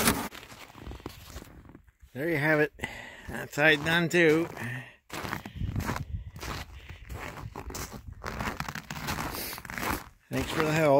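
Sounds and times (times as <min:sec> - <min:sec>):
boots crunching on snow: 0:03.3 - 0:10.9.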